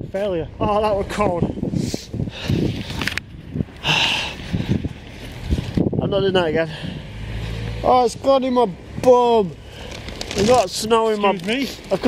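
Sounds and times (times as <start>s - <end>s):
wind buffeting microphone: 0.0s - 7.4s
camera handling rustle: 2.5s - 3.8s, 9.8s - 12.0s.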